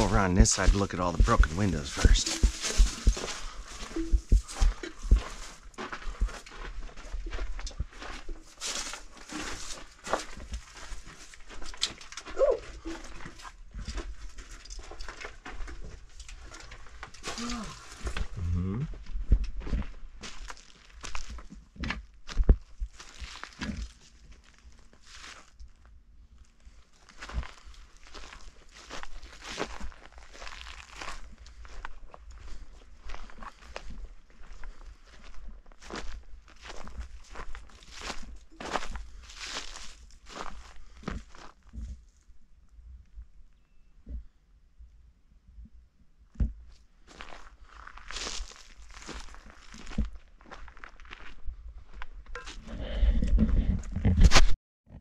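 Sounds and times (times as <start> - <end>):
footsteps on dirt and twigs: 0.0 - 18.4, 19.0 - 25.6, 26.6 - 42.2, 46.7 - 54.6.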